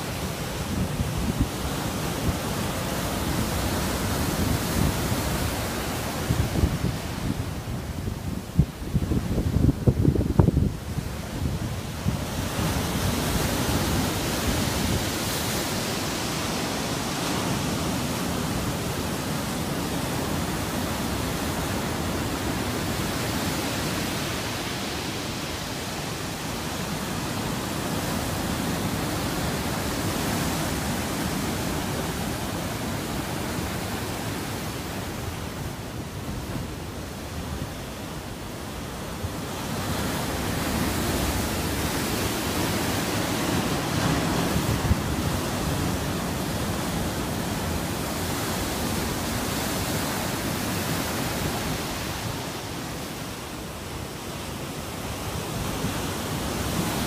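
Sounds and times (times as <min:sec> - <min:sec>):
large waves breaking on shore: 0:00.0 - 0:57.0.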